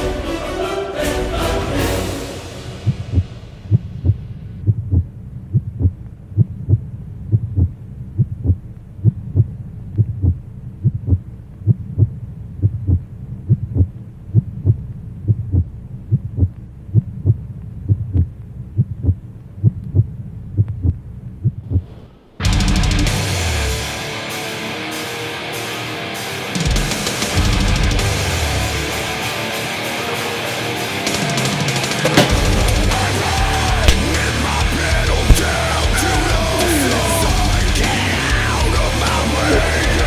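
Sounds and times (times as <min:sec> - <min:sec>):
low heartbeat thumping pulse: 0:02.9 - 0:21.9, 0:33.8 - 0:34.4, 0:35.1 - 0:36.0
heavy metal music: 0:22.4 - 0:40.0.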